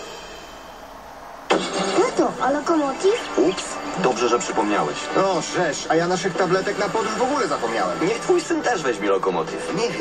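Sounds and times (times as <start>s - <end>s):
radio advert: 0.0s - 10.0s.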